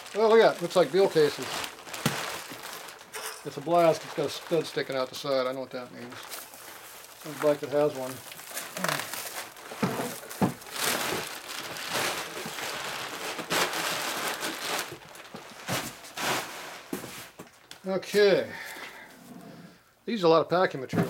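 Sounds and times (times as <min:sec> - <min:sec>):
plastic wrap crinkling: 0:00.0 - 0:18.3.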